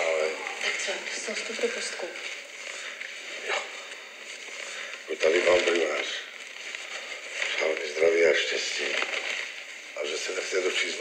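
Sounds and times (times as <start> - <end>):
man speaking: 0.0 - 0.6, 3.3 - 3.9, 5.0 - 6.4, 7.5 - 9.1, 10.0 - 11.0
film soundtrack through small speakers: 0.0 - 11.0.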